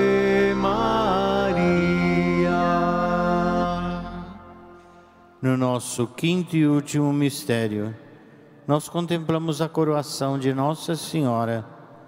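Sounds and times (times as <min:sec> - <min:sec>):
sustained accompaniment: 0:00.0 - 0:05.7
person singing a hymn: 0:00.0 - 0:05.8.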